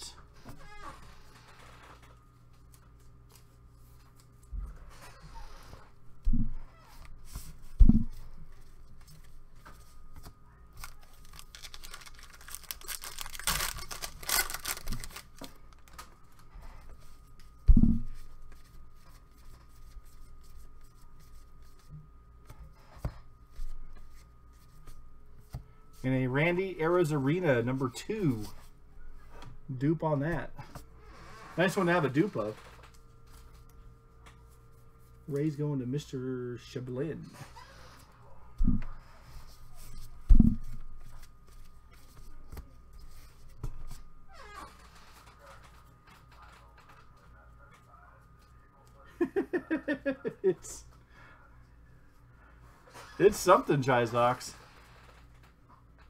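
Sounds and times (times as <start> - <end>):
foil wrapper tearing and crinkling: 10.8 - 16.1.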